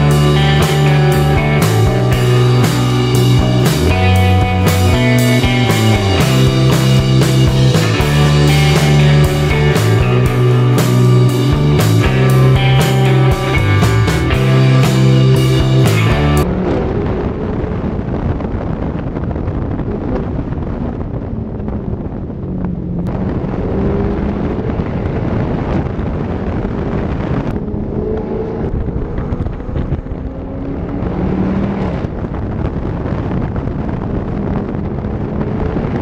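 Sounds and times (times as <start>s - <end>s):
sports car engine: 0.0s - 36.0s
wind rushing over microphone: 0.0s - 36.0s.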